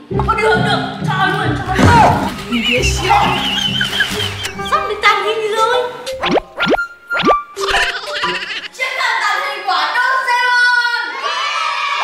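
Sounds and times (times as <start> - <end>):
light background music: 0.0 - 8.9
boing-like cartoon sound effects: 6.2 - 8.2.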